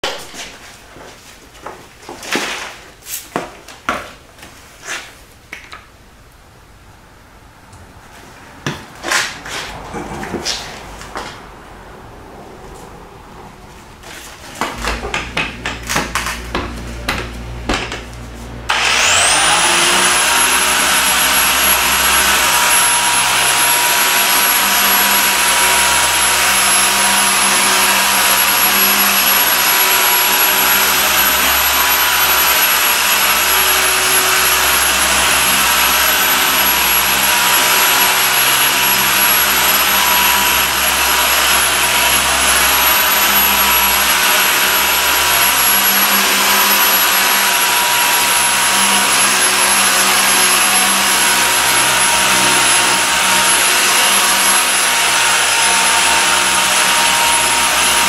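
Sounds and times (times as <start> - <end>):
polisher rattling: 14.1 - 58.0
polisher motor whine: 18.7 - 58.0.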